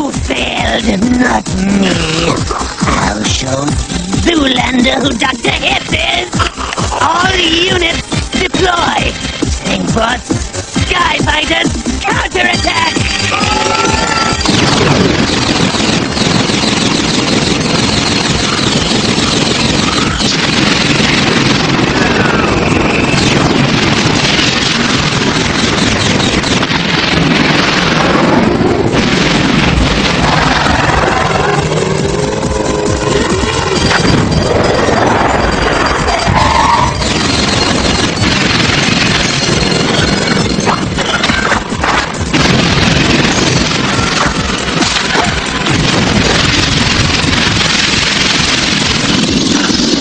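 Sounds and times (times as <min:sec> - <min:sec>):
cartoon background music: 0:00.0 - 0:26.4
battle crashes and blasts: 0:00.0 - 0:50.0
sliding tones: 0:12.8 - 0:50.0.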